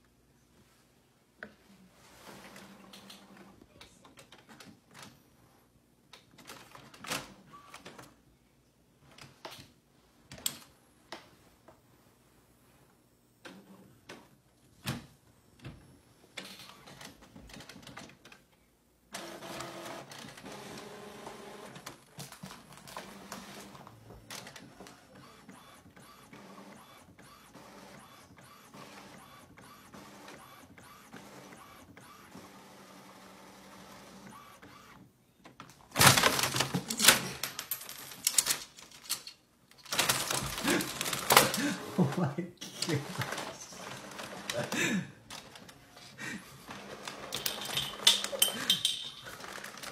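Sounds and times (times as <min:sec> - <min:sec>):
printer mechanism whirring: 0:19.1 - 0:22.0, 0:42.7 - 0:44.6.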